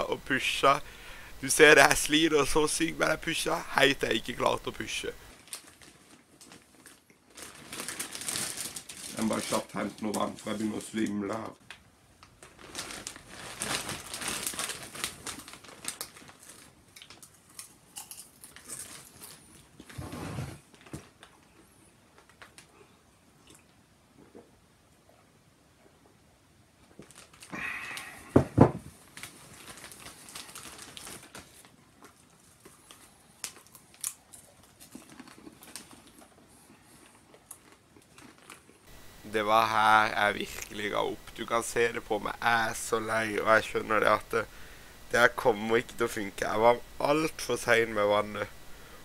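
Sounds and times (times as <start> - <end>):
plastic bag crinkling: 1.5 - 11.4, 12.2 - 20.0, 22.1 - 22.7, 26.9 - 28.1, 29.0 - 44.5.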